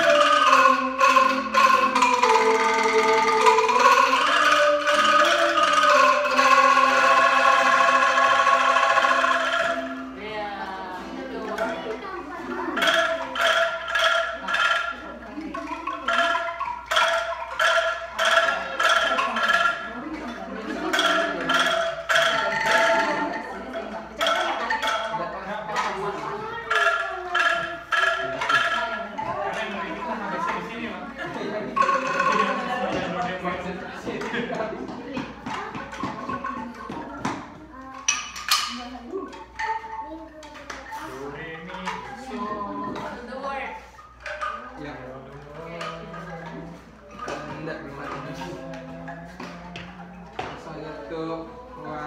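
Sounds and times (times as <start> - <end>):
melody on struck instruments: 0.0 - 40.4
voices talking: 0.0 - 52.0.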